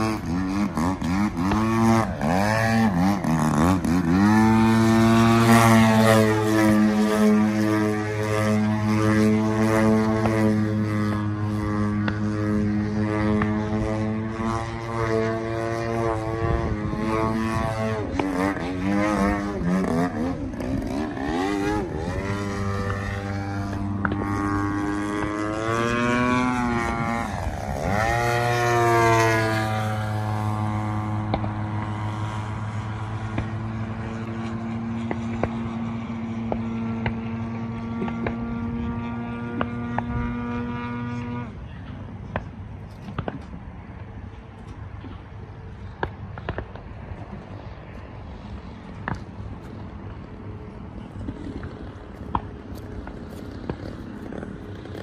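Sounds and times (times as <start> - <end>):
model airplane engine and propeller: 0.0 - 55.0.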